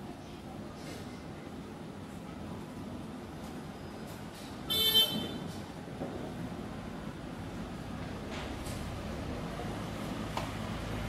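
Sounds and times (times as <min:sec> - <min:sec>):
vehicle horn toot: 0:04.7 - 0:05.5.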